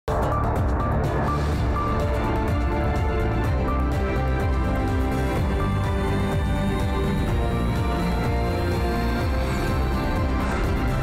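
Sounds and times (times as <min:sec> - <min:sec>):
news theme music: 0:00.1 - 0:11.0.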